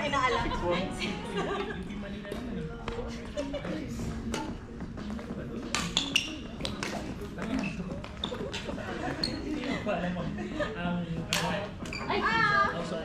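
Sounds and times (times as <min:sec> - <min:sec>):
voices in echoing hall: 0:00.0 - 0:13.0
rackets hitting shuttlecock: 0:05.7 - 0:08.7.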